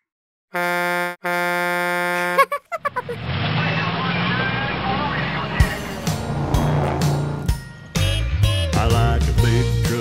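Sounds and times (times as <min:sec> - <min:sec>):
cartoon truck horn honks: 0:00.5 - 0:02.9, 0:07.9 - 0:09.2.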